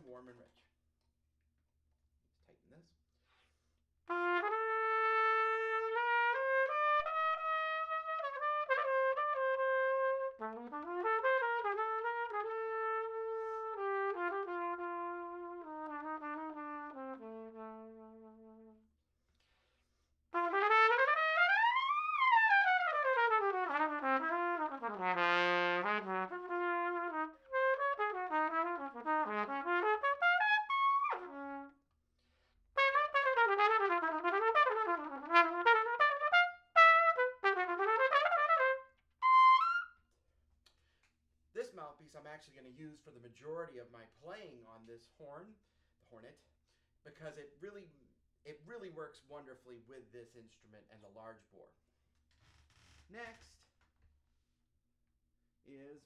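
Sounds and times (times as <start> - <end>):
solo trumpet playing: 4.1 - 18.9, 20.4 - 31.8, 32.8 - 40.0.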